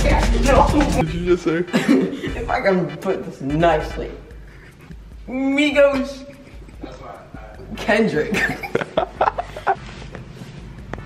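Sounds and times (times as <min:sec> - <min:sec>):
young man's voice: 0:00.0 - 0:04.4, 0:05.2 - 0:08.7.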